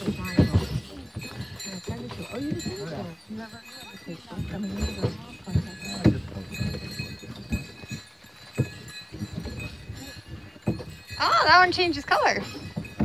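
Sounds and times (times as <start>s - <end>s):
faint voices: 0.0s - 12.7s
irregular knocks and thumps: 0.0s - 13.0s.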